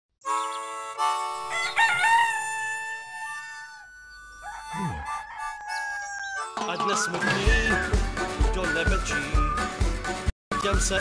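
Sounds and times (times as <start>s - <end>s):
rooster crowing: 1.4s - 6.6s.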